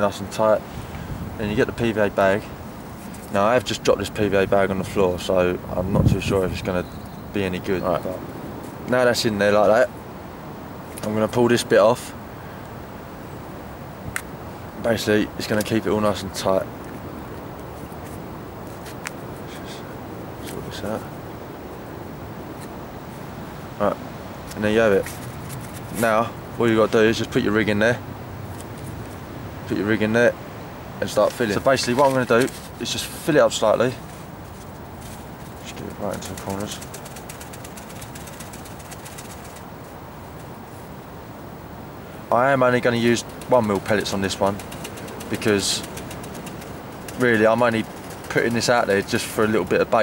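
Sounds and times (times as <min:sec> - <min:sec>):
background hiss: 0:00.0 - 0:50.0
pellets ticking and rustling: 0:31.3 - 0:39.9, 0:42.8 - 0:49.5.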